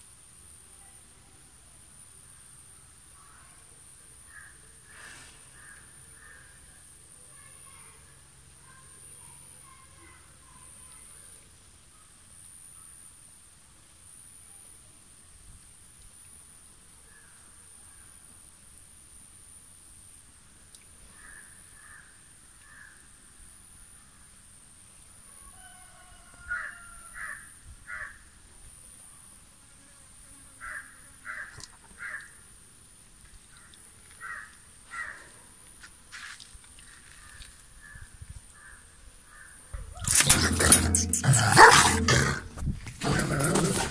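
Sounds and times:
crows cawing: 0:22.7 - 0:23.0, 0:26.4 - 0:28.2, 0:30.6 - 0:32.3, 0:34.2 - 0:35.3.

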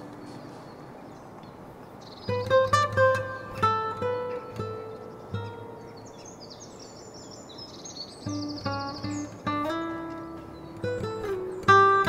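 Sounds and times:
acoustic guitar picking single notes: 0:02.3 - 0:07.4, 0:08.1 - 0:12.0.

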